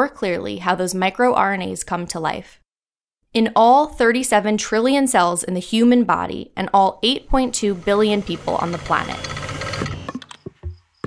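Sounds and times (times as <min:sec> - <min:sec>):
soft percussive knocks: 0:10.2 - 0:11.0.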